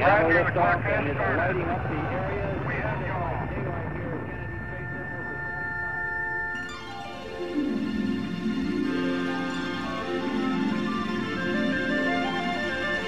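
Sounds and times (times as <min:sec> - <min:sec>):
commentary voice: 0:00.0 - 0:05.7
low rumble: 0:00.0 - 0:06.5
synthesizer chord: 0:04.8 - 0:13.0
orchestral music: 0:05.1 - 0:13.0.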